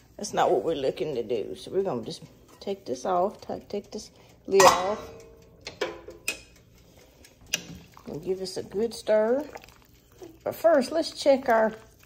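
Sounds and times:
pot lid ringing: 4.6s - 6.4s.

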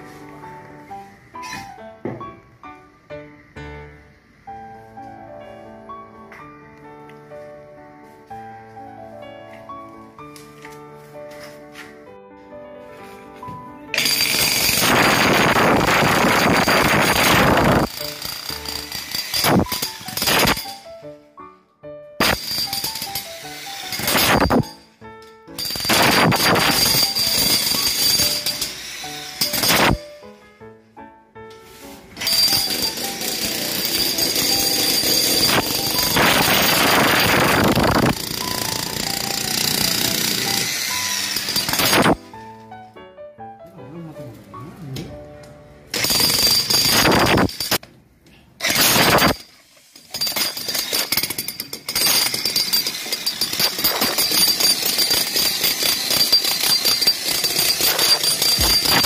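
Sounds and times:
demolition hammer breaking concrete: 14.0s - 20.9s, 22.2s - 24.8s, 25.6s - 30.1s, 32.2s - 42.2s, 45.9s - 47.8s, 48.6s - 59.0s.

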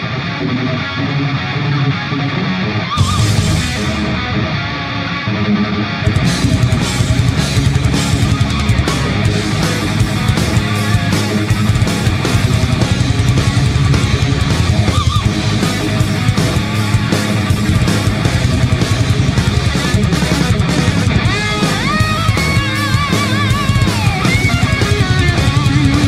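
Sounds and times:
heavy rock music: 0.0s - 26.0s
lead guitar with bends: 0.0s - 26.0s.

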